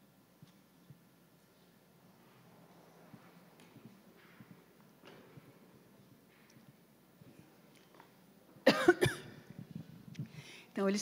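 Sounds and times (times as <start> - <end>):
woman coughing into microphone: 8.6 - 9.5.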